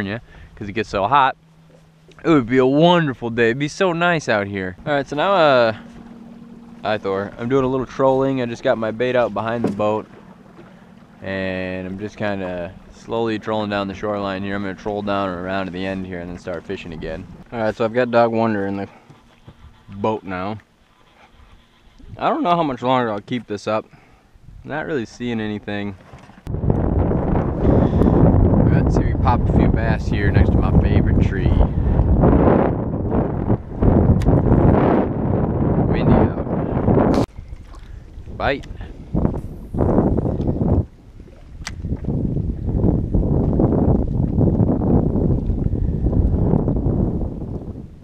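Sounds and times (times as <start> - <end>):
wind buffeting microphone: 0.0 - 20.6, 21.3 - 22.8, 24.4 - 48.0.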